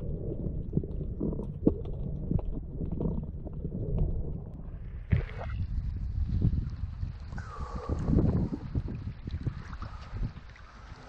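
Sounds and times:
muffled underwater rumble: 0.0 - 11.0
wind: 0.0 - 11.0.

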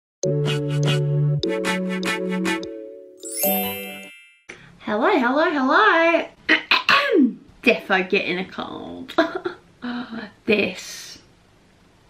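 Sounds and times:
bell-like chiming jingle: 3.2 - 4.6.

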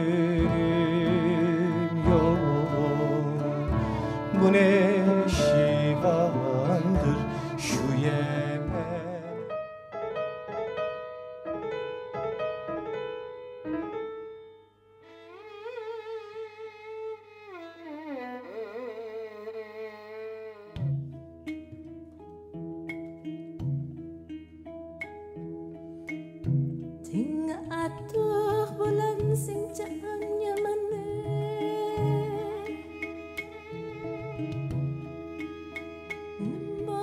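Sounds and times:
solo violin with vibrato: 0.0 - 9.4, 15.0 - 21.1, 30.9 - 37.0
plucked string notes: 0.0 - 10.8, 15.1 - 37.0.

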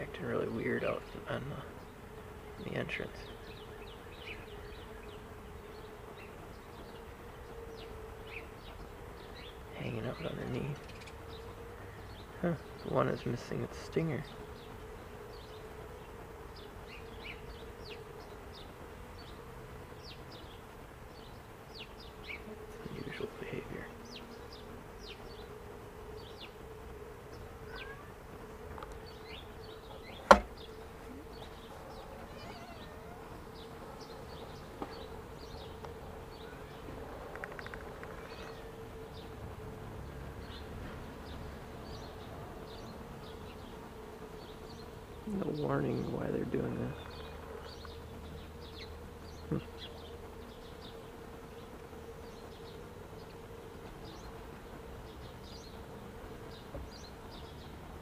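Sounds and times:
honeybees buzzing: 0.0 - 58.0
sharp click: 30.3 - 30.5.

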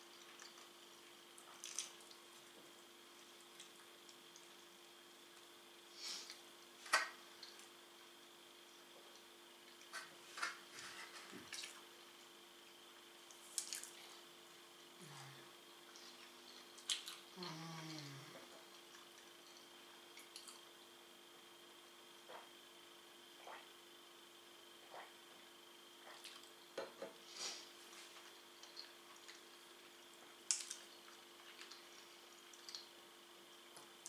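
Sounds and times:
faint steady hum: 0.0 - 34.0
closed-mouth hum: 11.3 - 34.0
person chewing food: 15.8 - 20.7, 28.1 - 32.9.

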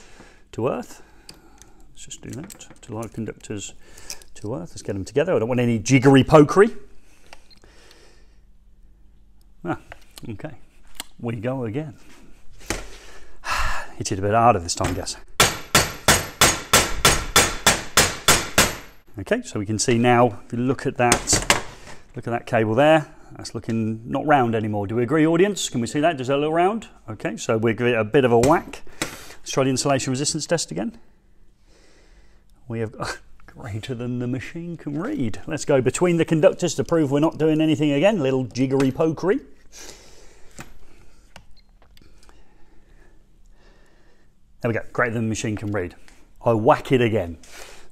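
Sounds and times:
test leads being handled: 1.2 - 4.8
hammer striking metal cable: 14.9 - 19.0.

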